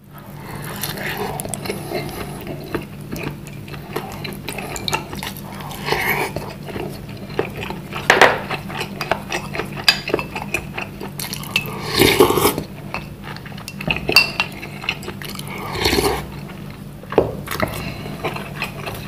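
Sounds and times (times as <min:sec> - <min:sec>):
chewing: 0:00.1 - 0:19.0.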